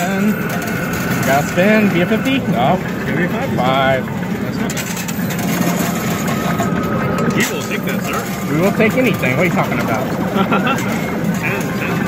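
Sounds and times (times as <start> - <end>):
arcade din: 0.0 - 12.0.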